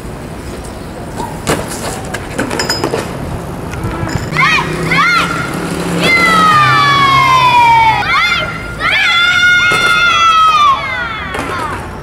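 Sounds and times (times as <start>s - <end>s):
street noise: 0.0s - 12.0s
bike crashing on paving stones: 1.4s - 3.2s
wind on microphone: 3.2s - 4.4s.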